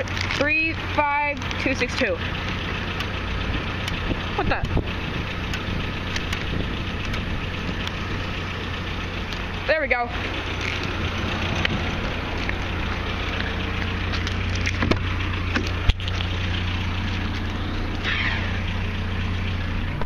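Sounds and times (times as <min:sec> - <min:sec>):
crackling rustle: 0:00.0 - 0:00.5, 0:10.4 - 0:17.6
pickup engine idling: 0:00.0 - 0:20.0
sharp clicks: 0:03.8 - 0:08.0.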